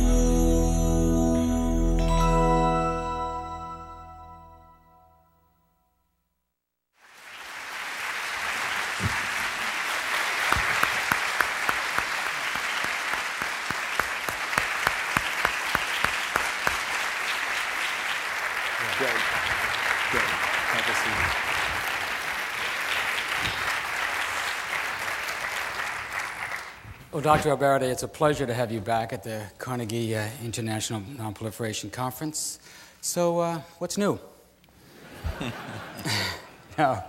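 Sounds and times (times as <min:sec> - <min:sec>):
large audience applauding: 0:07.0 - 0:27.0.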